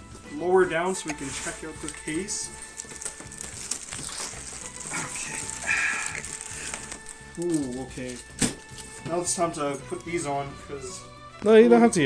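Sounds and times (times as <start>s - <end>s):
plastic wrap crinkling: 0.8s - 9.2s.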